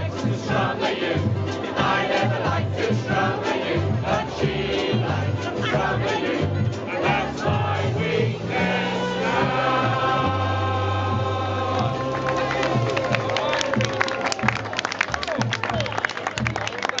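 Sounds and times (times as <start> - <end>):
ukulele group with singers: 0.0 - 14.5
voices: 0.0 - 17.0
people clapping: 11.6 - 17.0.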